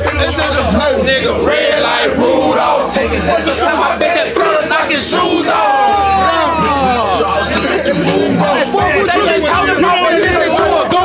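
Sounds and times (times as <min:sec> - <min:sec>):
group shouting in celebration: 0:04.2 - 0:07.2.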